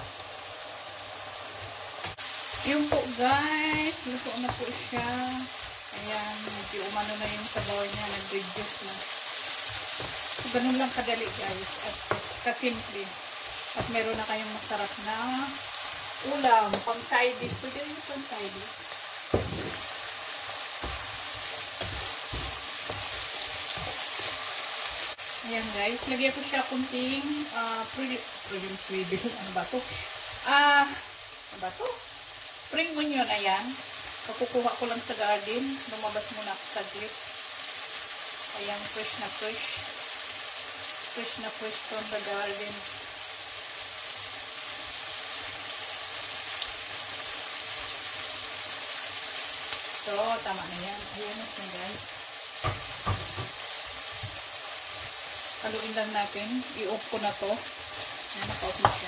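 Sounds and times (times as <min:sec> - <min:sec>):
mushrooms sizzling in a frying pan: 0:00.0 - 0:59.0
wooden spatula knocking against pan: 0:11.3 - 0:12.4, 0:19.3 - 0:19.9, 0:52.6 - 0:53.6.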